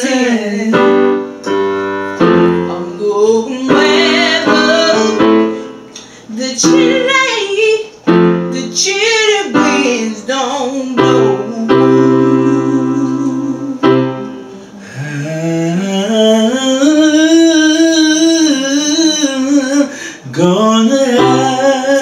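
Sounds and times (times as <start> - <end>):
gospel singing: 0.0 - 22.0
piano chords: 0.0 - 22.0.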